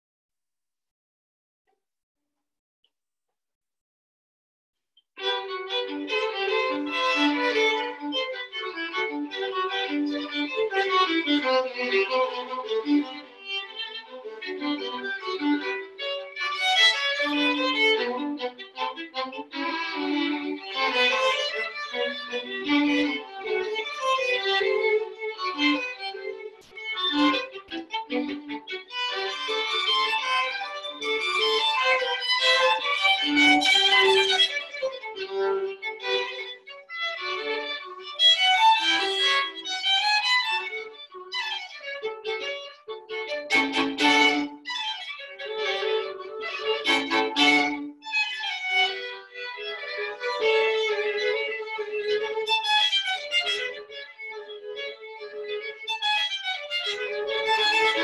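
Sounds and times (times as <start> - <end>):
two violins playing quick notes: 5.2 - 36.6, 37.2 - 54.0.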